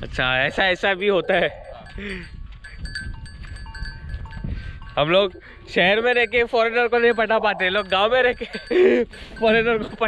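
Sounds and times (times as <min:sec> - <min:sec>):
wind and handling rumble: 0:00.0 - 0:10.0
small bells ringing faintly: 0:00.6 - 0:10.0.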